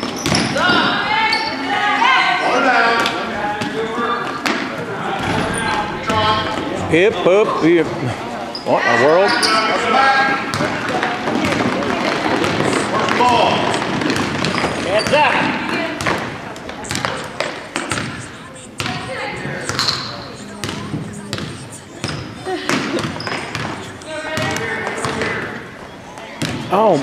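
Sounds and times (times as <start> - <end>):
crowd shouting and chattering: 0.0 - 27.0
basketball bouncing on wooden floor: 10.5 - 16.3.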